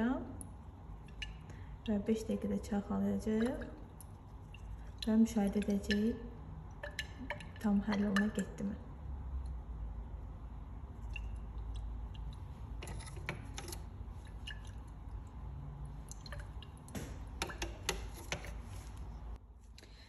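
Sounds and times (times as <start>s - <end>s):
low steady hum: 0.0s - 20.0s
faint liquid movement: 0.3s - 19.4s.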